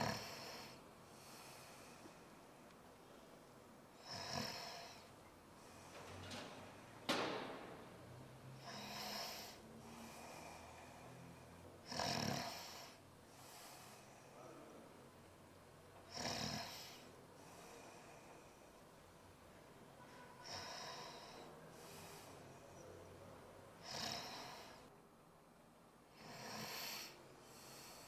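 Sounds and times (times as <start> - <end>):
man snoring: 0.0 - 1.7, 4.0 - 5.1, 8.6 - 13.0, 16.0 - 18.4, 20.4 - 22.1, 23.8 - 24.9, 26.2 - 28.0.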